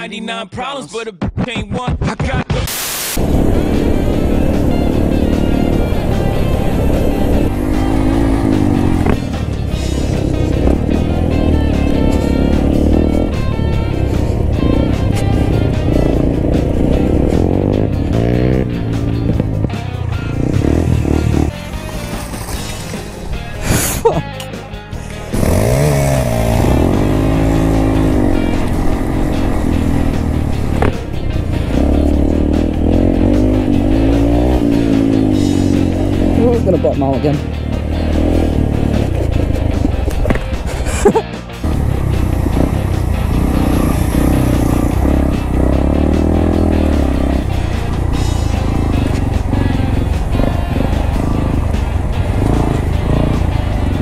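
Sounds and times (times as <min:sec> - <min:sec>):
music: 0:00.0 - 0:54.0
motorcycle engines revving: 0:03.2 - 0:54.0.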